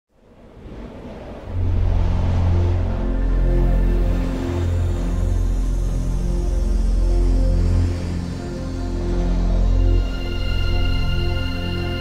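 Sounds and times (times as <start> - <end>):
low rumbling drone: 0.2 - 12.0.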